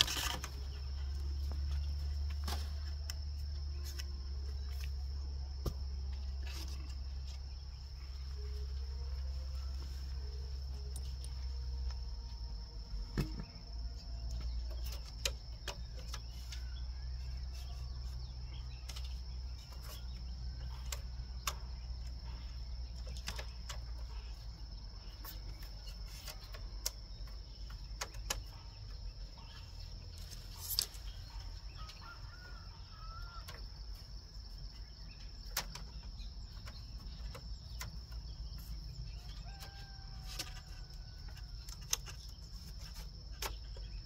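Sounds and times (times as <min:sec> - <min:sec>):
bamboo strips clicking and knocking: 0:00.0 - 0:07.8, 0:12.8 - 0:32.5, 0:35.2 - 0:44.0.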